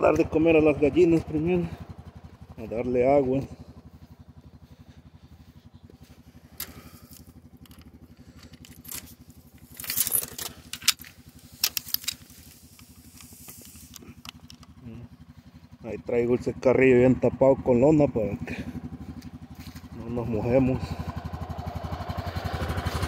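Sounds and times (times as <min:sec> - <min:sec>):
utility vehicle engine idling: 0:00.0 - 0:23.0
sharp metallic clicks and rattles: 0:06.5 - 0:15.0.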